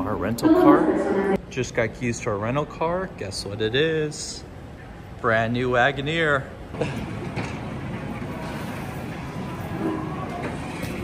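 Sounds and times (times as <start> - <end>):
indoor background din: 0.0 - 2.1, 6.7 - 11.0.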